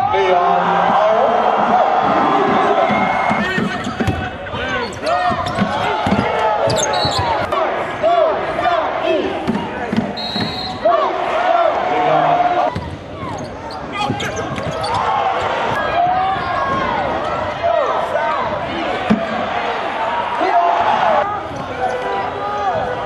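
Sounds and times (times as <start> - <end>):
voices in an arena: 0.0 - 23.0
sneakers squeaking on hardwood: 3.2 - 7.5, 9.5 - 10.8, 12.8 - 15.2.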